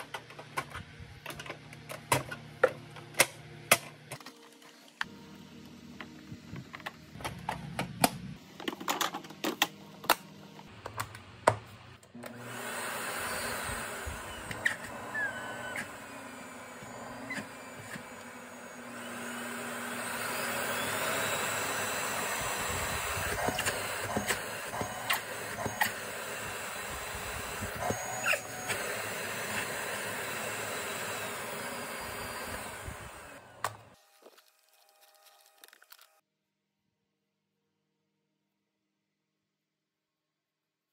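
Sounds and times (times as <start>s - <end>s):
vacuum cleaner motor running: 12.1s - 36.0s.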